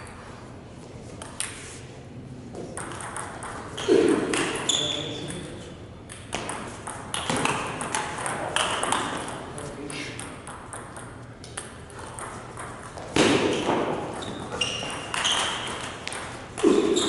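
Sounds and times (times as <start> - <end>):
table tennis ball clicking: 10.2 - 12.9.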